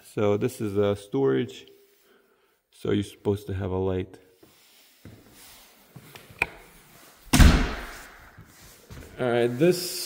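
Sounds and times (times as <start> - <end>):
door banging open: 7.3 - 8.0.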